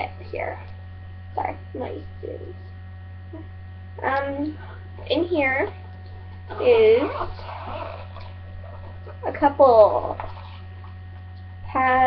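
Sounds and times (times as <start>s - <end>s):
low electrical hum: 0.0s - 12.0s
person speaking: 3.4s - 5.8s, 6.5s - 7.9s, 8.7s - 10.6s.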